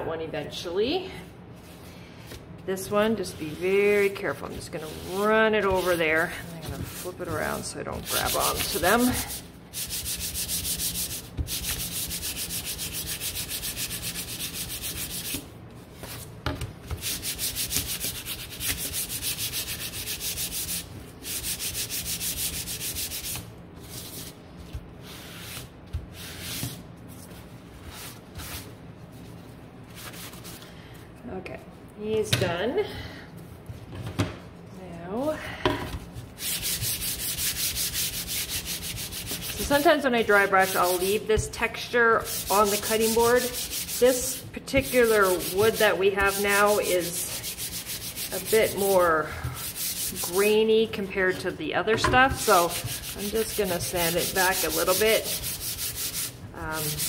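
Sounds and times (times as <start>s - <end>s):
hand-sanding wood: 3.3s - 16.2s, 16.9s - 24.4s, 36.3s - 50.8s, 52.2s - 57.0s.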